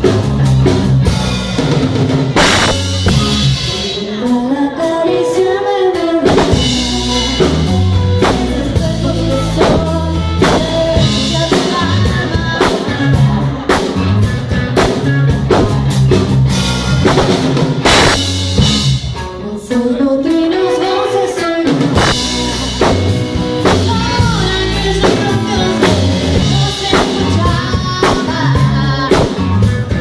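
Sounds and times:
drum kit beat: 0.0s - 19.4s, 20.3s - 30.0s
electric guitars: 0.0s - 30.0s
woman singing: 3.1s - 14.1s, 19.3s - 29.6s.

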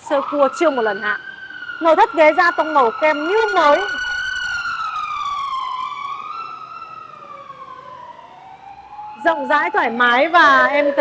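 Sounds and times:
emergency siren wailing: 0.0s - 11.0s.

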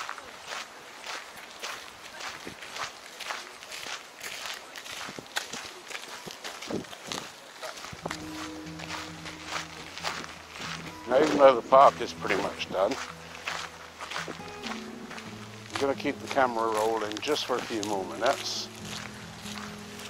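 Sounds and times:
footsteps on gravel: 0.0s - 20.0s.

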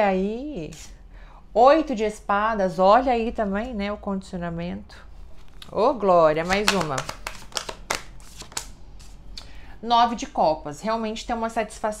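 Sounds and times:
cards being shuffled: 5.3s - 9.2s.

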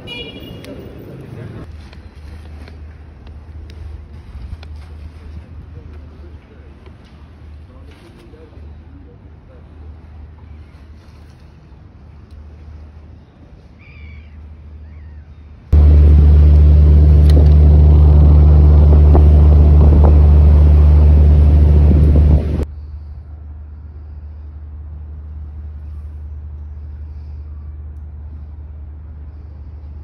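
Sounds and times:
wind: 0.0s - 30.0s
ferry engine rumble: 15.7s - 30.0s
water noise: 15.8s - 22.6s.

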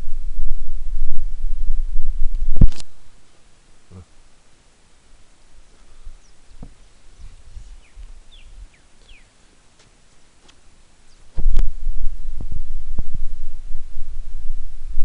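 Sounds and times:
small birds chirping: 5.6s - 11.4s
loud low rumble with thumps: 11.4s - 15.0s.

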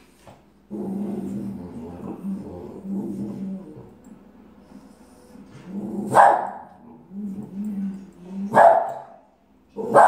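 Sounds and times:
dog growling: 0.7s - 4.1s, 5.5s - 6.2s, 6.8s - 8.6s.

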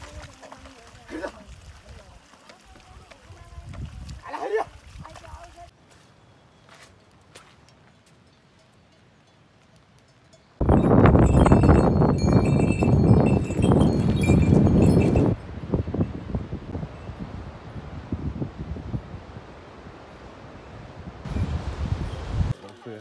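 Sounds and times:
hooves clattering on stones: 0.0s - 5.7s, 6.9s - 15.4s
horse bells jingling: 8.2s - 17.3s.

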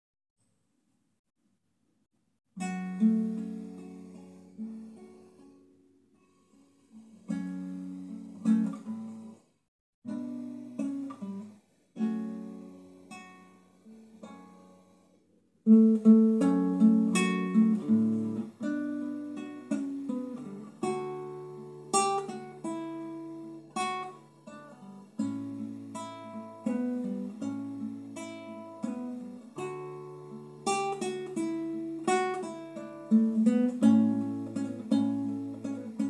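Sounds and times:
fingerpicked classical guitar: 2.6s - 36.0s.

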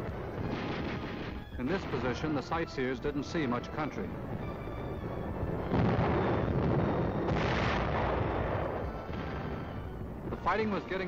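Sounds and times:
distant explosion rumbling: 0.0s - 11.0s.

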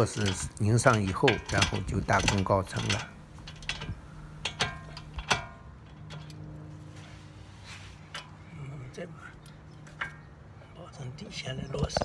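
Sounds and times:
wrench clinking on metal bolts: 0.0s - 6.4s
steady low hum: 0.0s - 12.0s.

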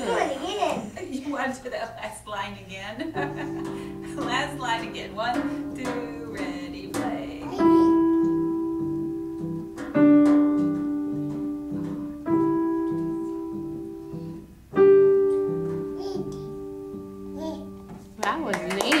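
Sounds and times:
voices: 0.0s - 8.0s
slow piano melody: 3.1s - 18.5s
people clapping: 18.2s - 19.0s.

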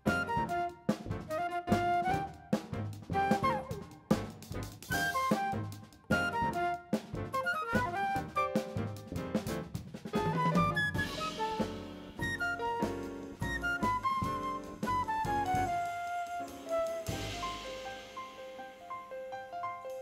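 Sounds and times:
flute held notes: 0.0s - 4.1s, 4.9s - 9.0s, 10.2s - 18.2s
jazz band playing: 0.0s - 18.8s.

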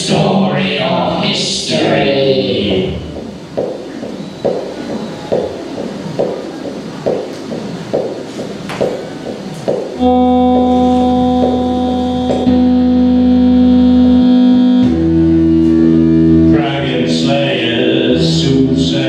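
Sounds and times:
noisy electronic pulse: 1.6s - 19.0s
held synthesizer chord: 9.7s - 18.8s.

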